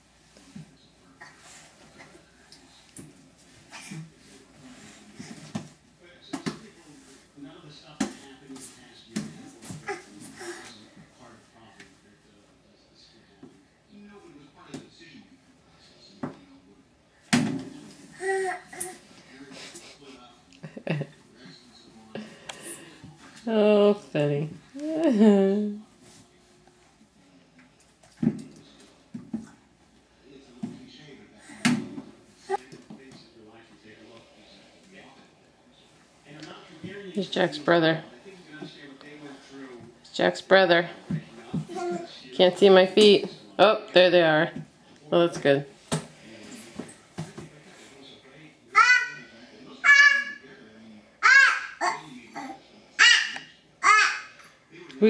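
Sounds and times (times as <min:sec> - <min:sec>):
baby babbling: 0:18.2 - 0:19.0, 0:41.7 - 0:42.1, 0:48.8 - 0:49.2, 0:51.2 - 0:54.4.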